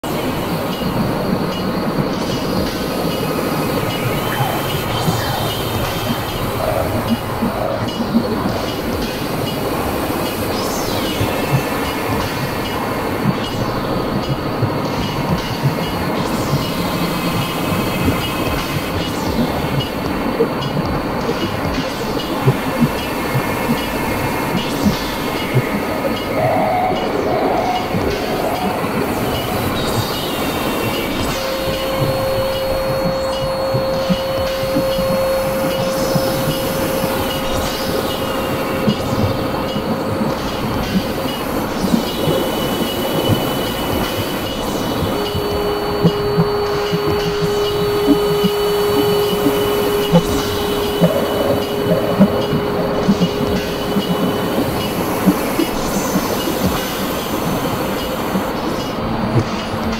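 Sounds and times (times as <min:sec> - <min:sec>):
rumbling noise drone: 0:00.0 - 0:59.9
steady held tone: 0:01.2 - 0:58.6.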